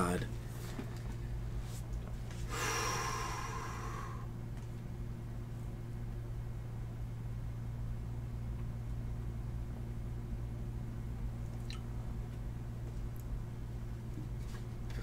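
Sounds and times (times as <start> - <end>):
steady low hum: 0.0 - 15.0.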